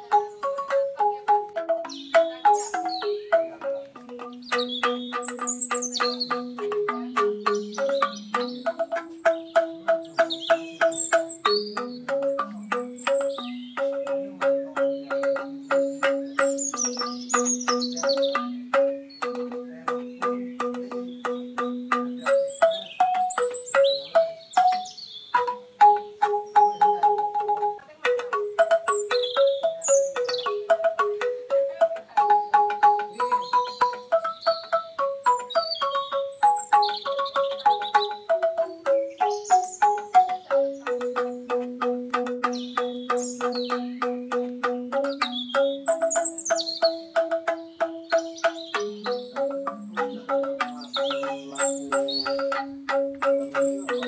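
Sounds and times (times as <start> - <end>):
bamboo instruments in tremolo: 0.0 - 54.0
high bird chirps: 0.0 - 54.0.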